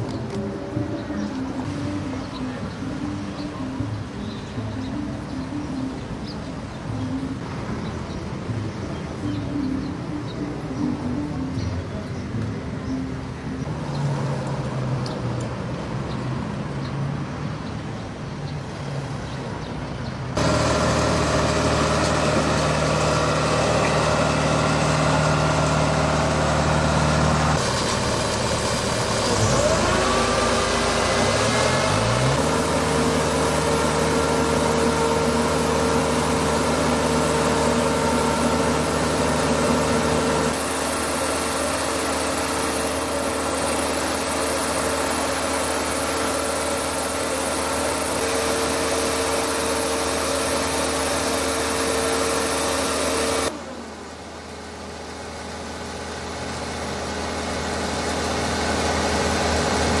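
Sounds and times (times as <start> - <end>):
mist-blowing machine fan hum: 20.4 - 60.0.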